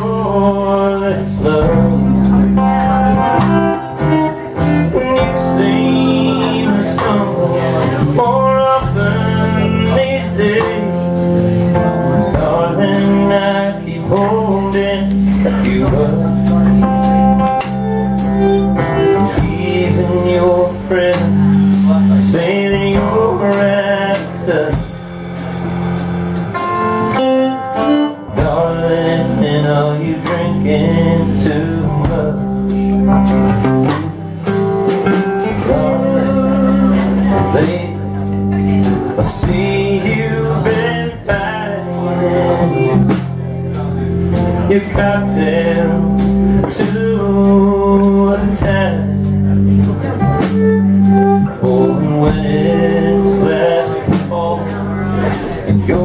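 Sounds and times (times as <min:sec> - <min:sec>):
electric guitar: 0:00.0 - 0:56.0
live country band playing: 0:00.0 - 0:56.0
drums with cymbals: 0:21.1 - 0:56.0.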